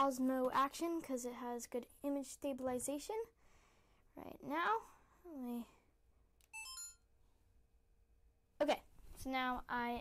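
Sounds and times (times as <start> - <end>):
camera electronic chime: 6.5 - 7.1.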